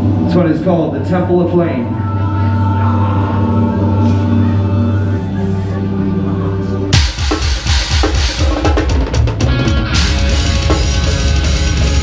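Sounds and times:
death metal band playing: 0:00.0 - 0:12.0
distorted guitars: 0:00.0 - 0:12.0
rapid bass drum: 0:07.0 - 0:12.0.

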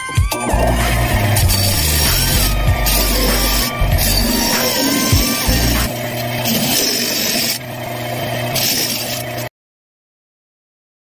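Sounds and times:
motor humming: 0:00.3 - 0:09.5
disc sander scraping wood: 0:00.4 - 0:09.5.

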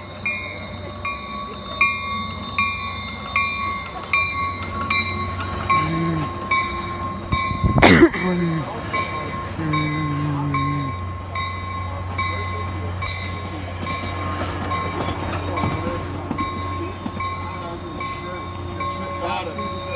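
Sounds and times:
brake and wheel squeal: 0:00.0 - 0:07.0, 0:14.0 - 0:19.9
bell ringing: 0:00.0 - 0:19.9
train rolling with low rumble: 0:00.0 - 0:19.9.

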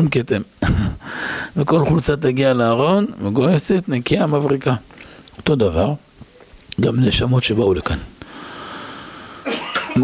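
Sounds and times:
breath into microphone: 0:00.7 - 0:01.6, 0:04.9 - 0:05.3, 0:08.2 - 0:09.5.

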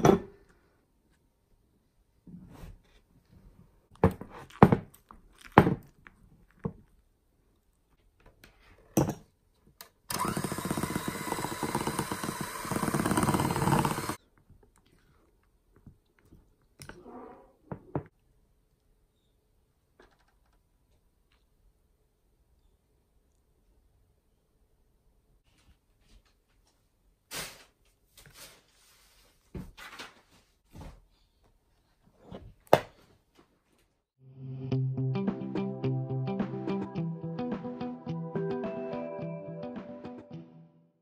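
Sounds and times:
electric hand mixer running: 0:10.1 - 0:14.2.

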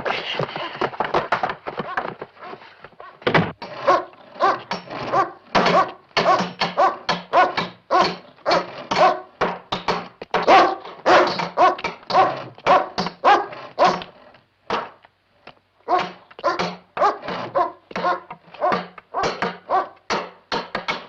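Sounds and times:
dog barking: 0:03.8 - 0:09.3, 0:10.4 - 0:14.1, 0:15.9 - 0:20.0.

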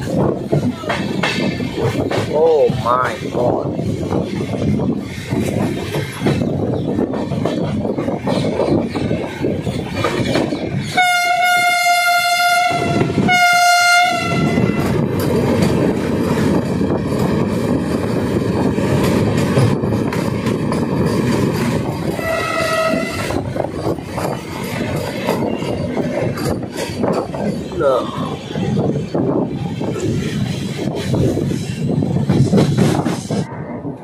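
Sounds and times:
train rail noise: 0:00.0 - 0:34.0
train air horn blasts: 0:10.9 - 0:14.9, 0:22.1 - 0:23.4.

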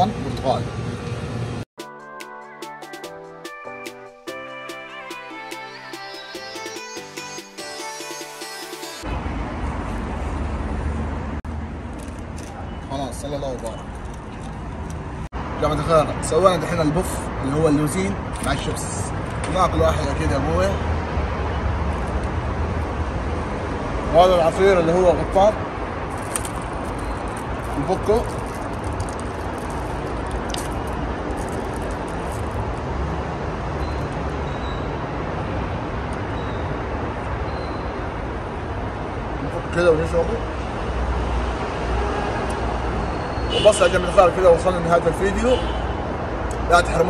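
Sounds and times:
street traffic rumble: 0:00.0 - 0:01.7, 0:09.0 - 0:47.0
snack wrapper crinkling: 0:26.1 - 0:32.8.

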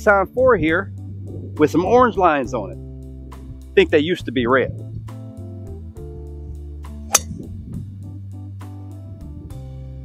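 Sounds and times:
golf club striking ball: 0:07.1 - 0:07.5.

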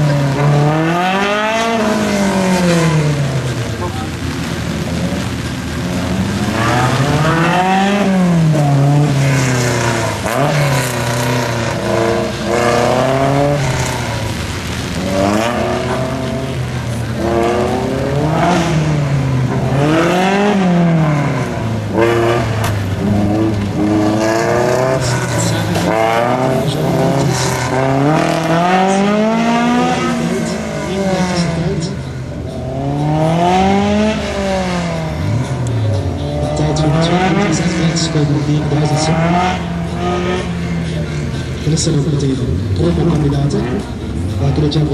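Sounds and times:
racing car engine revving: 0:00.0 - 0:44.9.

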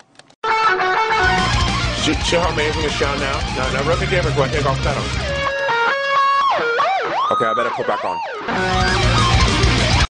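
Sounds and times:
electric guitar single notes: 0:00.4 - 0:10.0.

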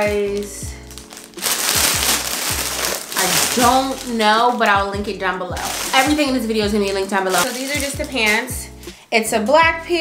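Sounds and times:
background music with low beat: 0:00.0 - 0:10.0
plastic bag crinkling: 0:00.3 - 0:08.7.

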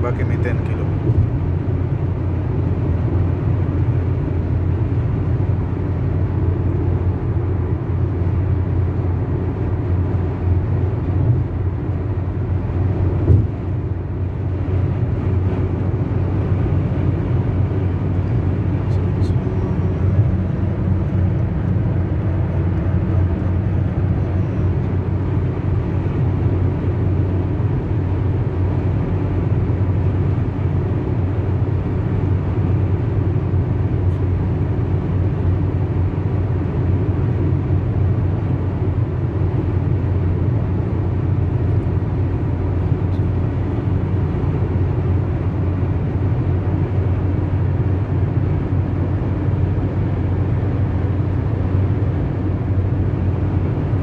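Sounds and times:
car cabin road and engine noise: 0:00.0 - 0:54.0.

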